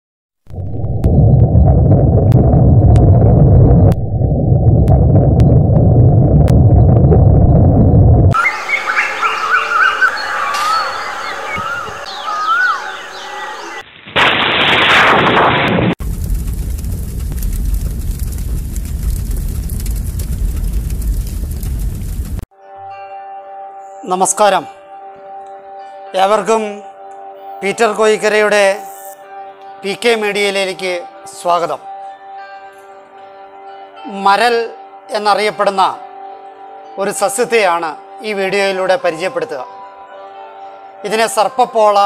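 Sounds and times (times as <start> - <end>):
loud low rumble: 0.5 - 8.4, 16.0 - 22.4
birds chirping: 8.4 - 13.8.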